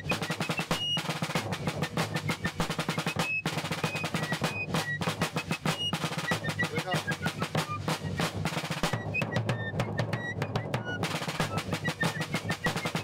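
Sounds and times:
snare drum marching cadence: 0.0 - 13.0.

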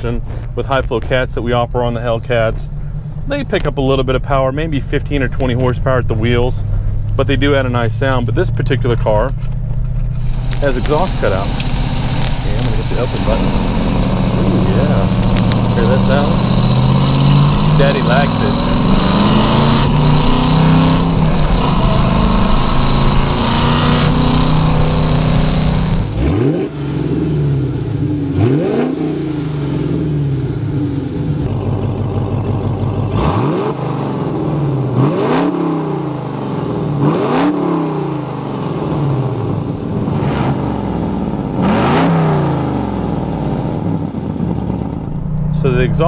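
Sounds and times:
car engine revving: 0.0 - 46.0
loud engine running steadily: 0.0 - 46.0.

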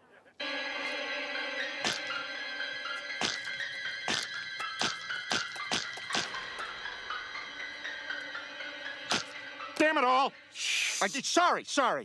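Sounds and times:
background music with held tones: 0.4 - 11.7.

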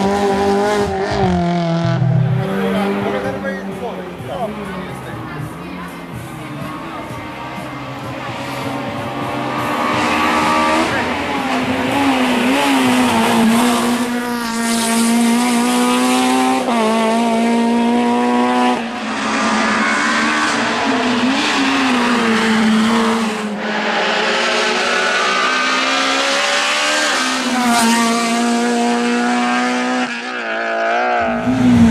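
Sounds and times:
race car engine revving: 0.0 - 31.9.

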